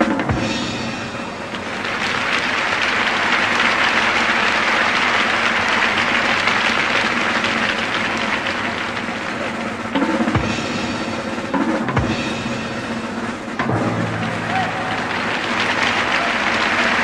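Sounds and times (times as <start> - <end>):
audience applauding: 0.9 - 10.0, 14.0 - 17.0.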